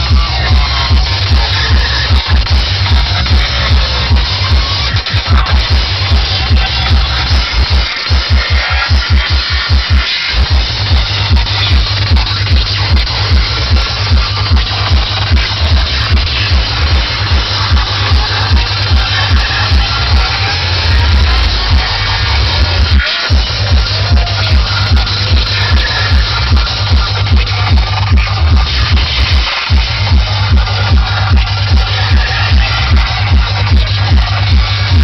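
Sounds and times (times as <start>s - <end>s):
fast kick drum: 0.0s - 35.0s
heavy rolling bassline: 0.0s - 35.0s
psytrance through sound system: 0.0s - 35.0s.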